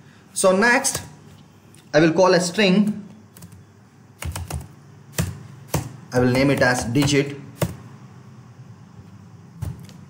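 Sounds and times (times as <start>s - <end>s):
computer keyboard typing: 3.3s - 3.6s, 4.2s - 7.8s.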